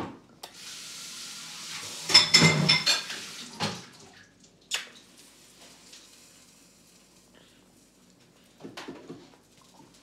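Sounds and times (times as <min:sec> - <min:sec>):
kitchen tap running: 0:00.4 - 0:04.2
kitchenware clack: 0:02.1 - 0:03.2.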